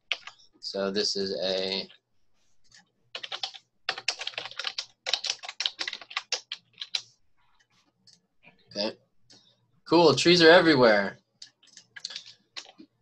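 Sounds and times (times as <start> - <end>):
typing on computer keyboard: 2.7 - 7.1, 11.4 - 12.9.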